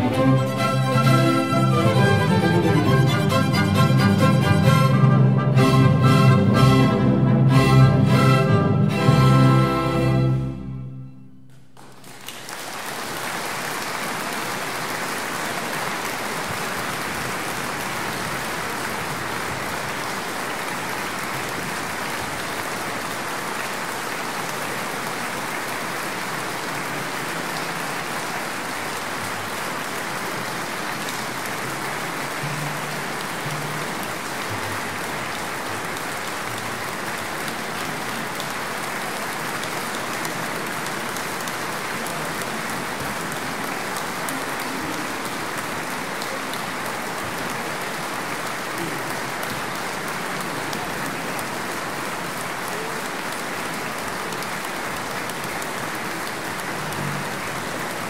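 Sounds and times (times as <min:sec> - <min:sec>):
audience applauding: 0:00.0 - 0:10.7, 0:11.5 - 0:58.0.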